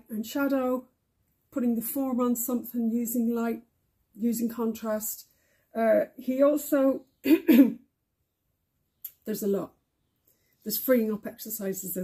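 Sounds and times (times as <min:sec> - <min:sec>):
woman coughing: 0:07.2 - 0:07.8.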